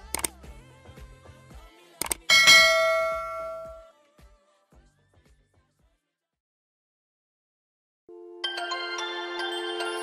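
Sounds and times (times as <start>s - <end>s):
mouse clicks: 0.0s - 0.4s, 2.0s - 2.3s
bright bell chime: 2.3s - 3.9s.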